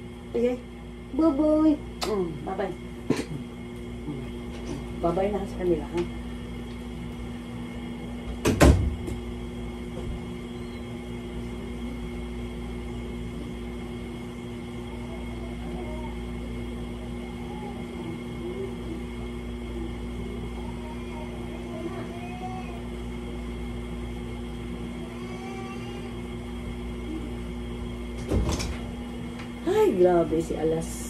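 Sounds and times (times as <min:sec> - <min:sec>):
door closing with clatter: 0:08.4 - 0:09.1, 0:28.2 - 0:28.9.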